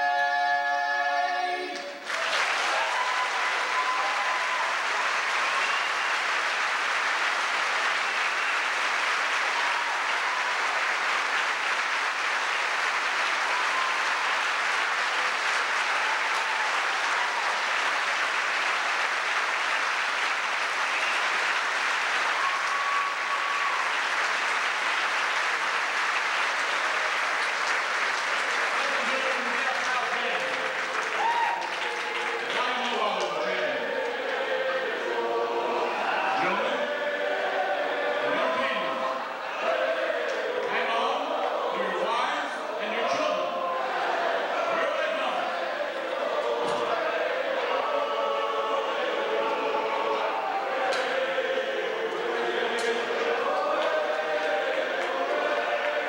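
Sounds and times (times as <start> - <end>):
audience cheering: 1.6 - 56.0
audience applauding: 2.0 - 41.5, 43.4 - 56.0
a cappella group singing: 33.3 - 56.0.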